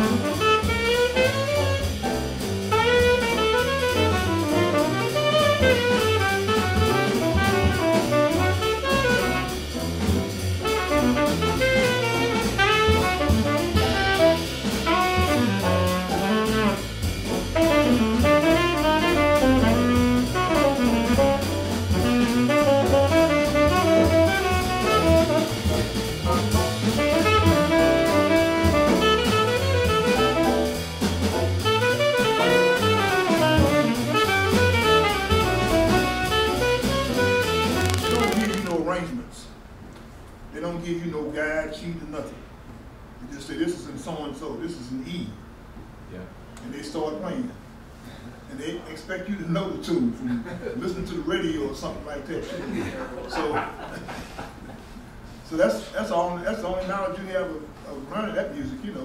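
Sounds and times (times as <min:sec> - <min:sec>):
saxophone melody: 0:00.0 - 0:02.0, 0:02.7 - 0:09.7, 0:10.6 - 0:25.6, 0:27.0 - 0:30.6, 0:31.6 - 0:38.8
low bass notes: 0:00.0 - 0:31.0, 0:36.6 - 0:38.9
drum kit: 0:00.0 - 0:38.9.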